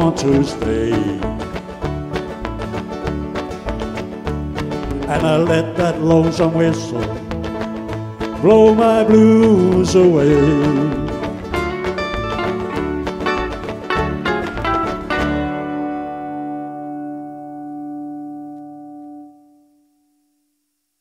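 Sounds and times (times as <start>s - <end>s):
country song on guitar and banjo: 0.0s - 19.4s.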